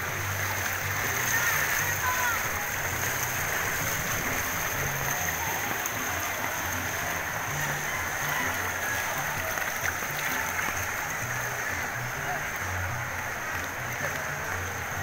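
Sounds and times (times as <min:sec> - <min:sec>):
music with low bass line: 0:00.0 - 0:15.0
floodwater sloshing around legs: 0:00.3 - 0:15.0.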